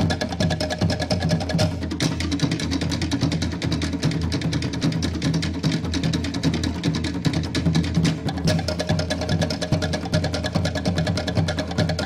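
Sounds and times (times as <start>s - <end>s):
deep steady drum: 0.0s - 12.0s
rapid drum strokes: 0.0s - 12.0s.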